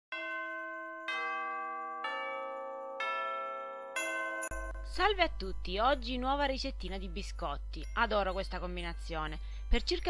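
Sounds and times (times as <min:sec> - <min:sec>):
descending bell tones: 0:00.2 - 0:06.2.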